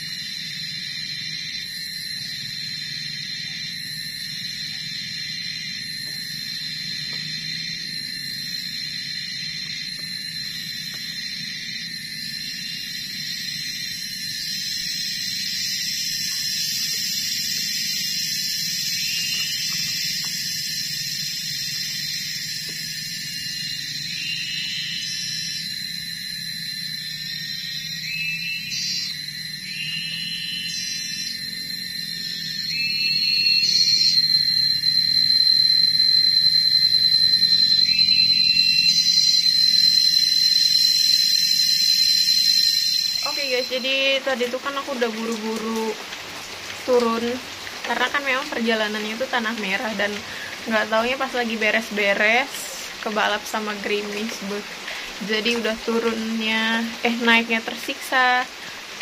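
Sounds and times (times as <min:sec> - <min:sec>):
cicada-like insect droning: 0:00.0 - 0:59.0.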